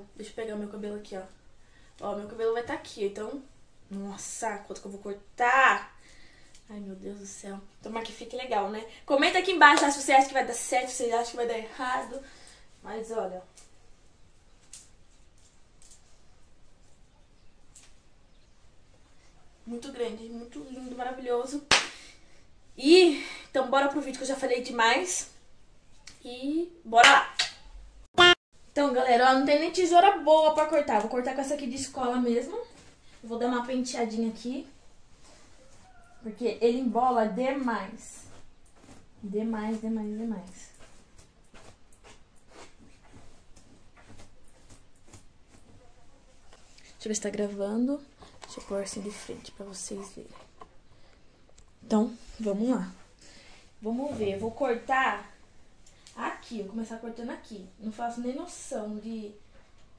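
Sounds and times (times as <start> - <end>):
soft swishes of hair: 37.5 - 47.8
comb brushing through hair: 40.6 - 45.7, 48.4 - 50.5.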